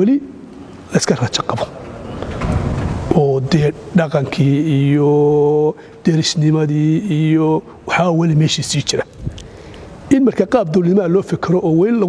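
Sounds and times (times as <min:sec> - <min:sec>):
man talking with held vowels: 0:00.0 - 0:01.8, 0:03.1 - 0:09.1, 0:10.1 - 0:12.0.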